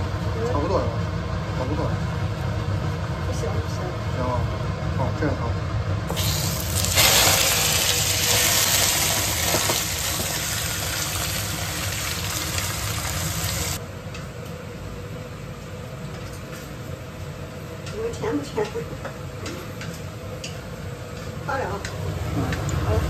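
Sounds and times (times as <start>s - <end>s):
meat sizzling in a wok: 6.1s - 13.8s.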